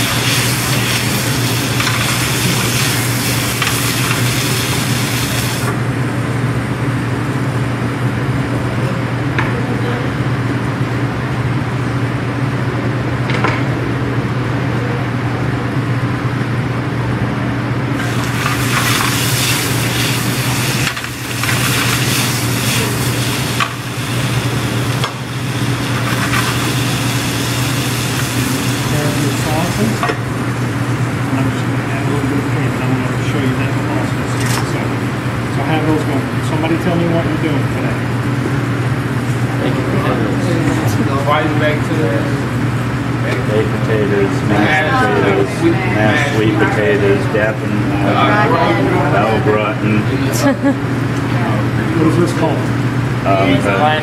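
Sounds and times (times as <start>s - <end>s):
potatoes sizzling in a frying pan: 0.0s - 5.7s, 18.0s - 30.1s
steady low hum: 0.0s - 54.0s.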